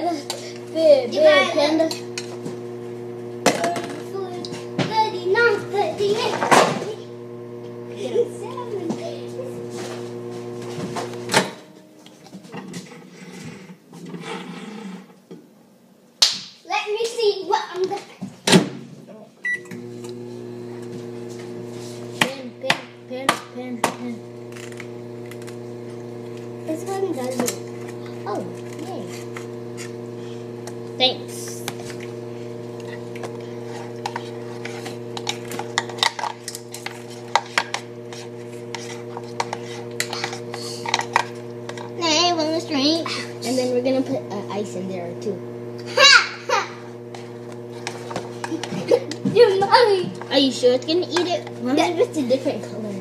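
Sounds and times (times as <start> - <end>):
children's voices: 0.0 - 2.2, 3.5 - 7.2, 7.9 - 9.9, 16.7 - 18.2, 22.2 - 24.3, 26.6 - 29.2, 31.0 - 31.7, 42.0 - 46.8, 48.5 - 53.0
muffled children's voices: 3.5 - 7.1, 7.9 - 10.0, 26.6 - 29.3
microwave oven beep: 19.4 - 19.8
steady hum: 19.5 - 53.0.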